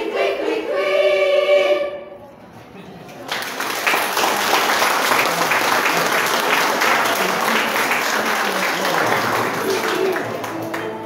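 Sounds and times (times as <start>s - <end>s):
girls' choir singing: 0.0s - 2.2s.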